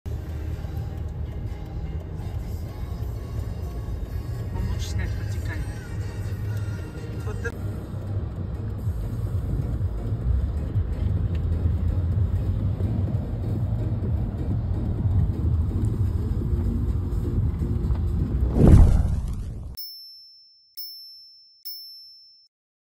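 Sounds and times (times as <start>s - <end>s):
street traffic rumble: 0.1s - 19.6s.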